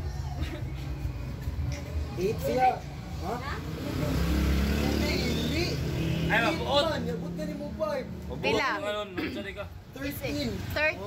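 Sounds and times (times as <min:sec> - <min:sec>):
vehicle engine drone: 0:00.9 - 0:08.8.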